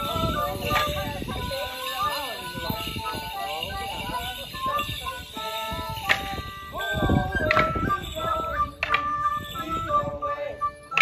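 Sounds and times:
folk band playing dance tune: 0.0 - 11.0
wooden sticks clashing: 8.8 - 9.2.

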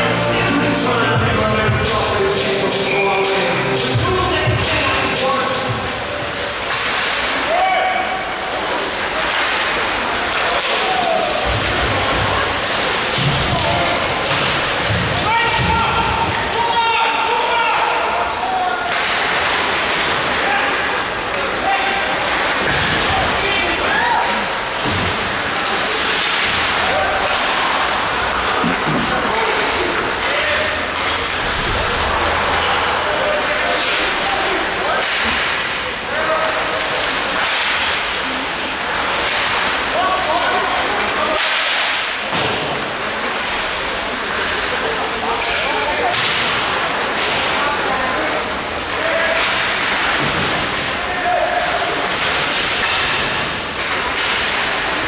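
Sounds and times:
shouting voices: 0.0 - 42.1, 44.0 - 53.1
puck and sticks knocking boards: 3.8 - 7.6, 8.6 - 16.7, 22.3 - 23.4, 24.7 - 35.9, 36.7 - 38.3, 39.0 - 42.9, 45.4 - 46.8, 51.9 - 55.0.

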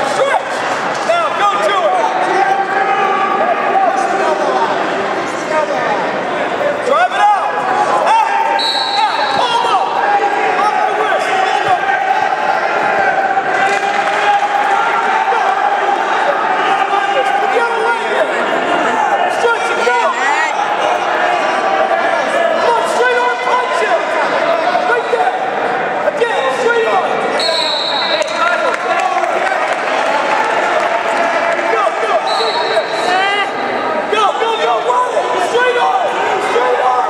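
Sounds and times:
voices shouting in echoing hall: 0.0 - 37.0
whistle blast: 8.6 - 9.5, 27.4 - 28.2, 32.2 - 33.1.

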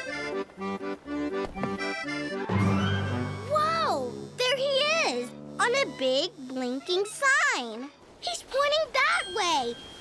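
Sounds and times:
accordion cartoon music: 0.0 - 10.0.

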